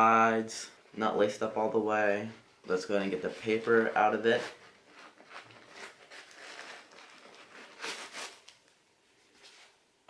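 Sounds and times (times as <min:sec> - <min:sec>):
paper rustling: 0:03.1 - 0:09.8.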